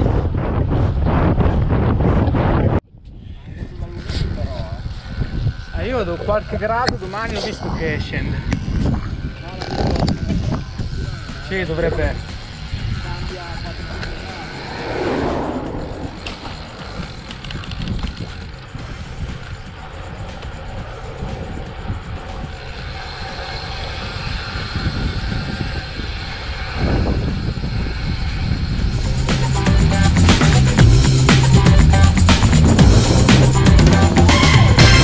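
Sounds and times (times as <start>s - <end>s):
wind buffeting microphone: 0.0s - 29.7s
car passing: 11.1s - 19.2s.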